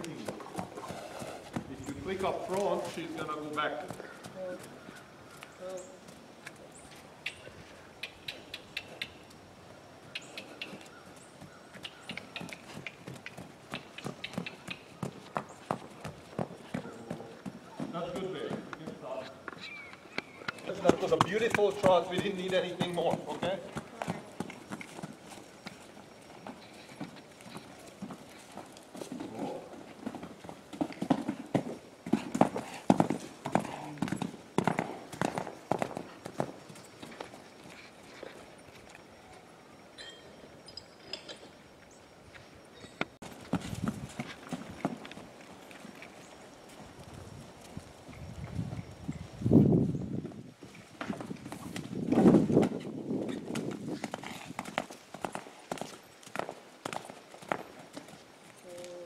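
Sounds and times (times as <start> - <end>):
horse hoofbeats on sand: 0.0 - 5.0, 10.6 - 19.2, 20.5 - 39.1, 43.2 - 49.4, 50.2 - 58.6.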